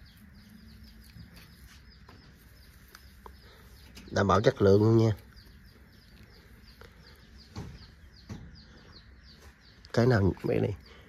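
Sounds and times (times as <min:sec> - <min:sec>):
chicks peeping: 0:00.0 - 0:11.0
soft knocks: 0:07.4 - 0:08.7.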